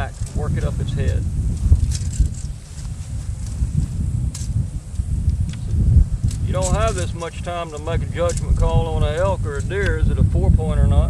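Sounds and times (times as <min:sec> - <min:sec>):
faint clicks and rustles: 0:00.0 - 0:10.0
wind buffeting microphone: 0:00.0 - 0:11.0.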